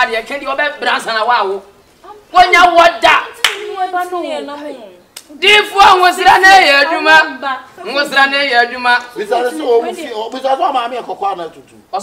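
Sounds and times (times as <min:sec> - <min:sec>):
hand claps: 0:03.4 - 0:03.7.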